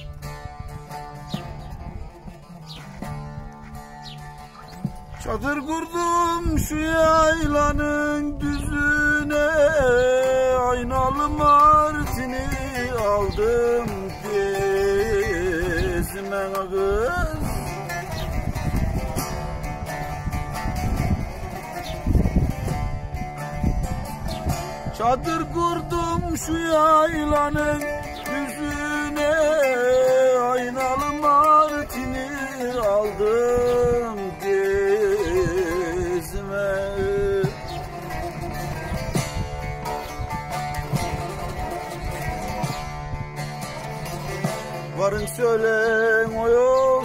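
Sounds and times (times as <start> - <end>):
plucked and strummed lutes: 0.0 - 47.0.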